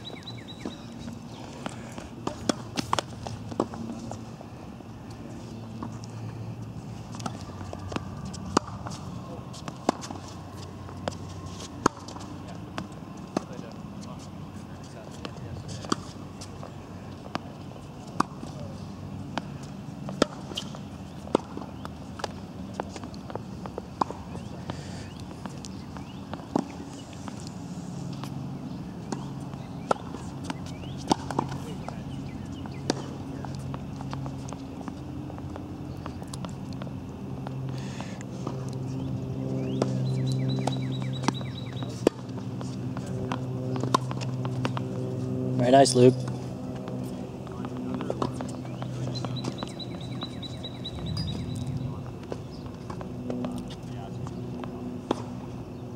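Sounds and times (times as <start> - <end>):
racket hitting tennis ball: 1.6 - 4.2, 7.1 - 13.6, 15.2 - 18.7, 19.3 - 24.5, 25.3 - 27.4, 29.0 - 36.6, 39.7 - 44.9, 47.0 - 53.9, 54.6 - 55.4.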